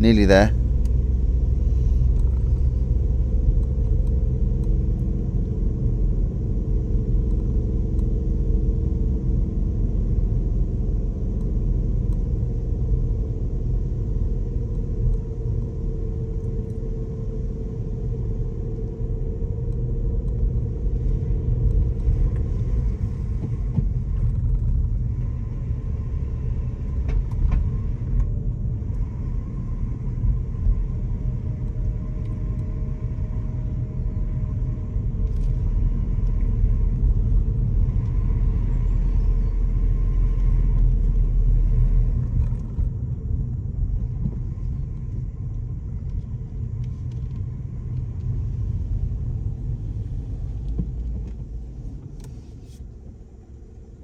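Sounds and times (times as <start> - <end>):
car engine and tyre rumble: 0.0 - 54.0.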